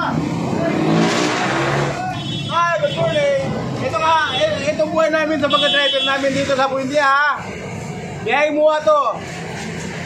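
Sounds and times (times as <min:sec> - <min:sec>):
vehicle passing close by: 0:00.0 - 0:02.1.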